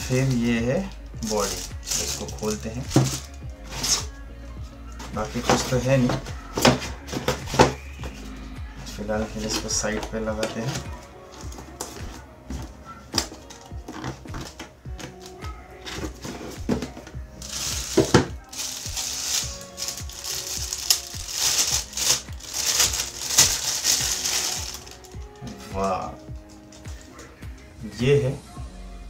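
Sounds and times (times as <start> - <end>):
plastic wrapping crinkling: 0.0 - 4.2, 13.1 - 27.3
background music: 0.0 - 29.0.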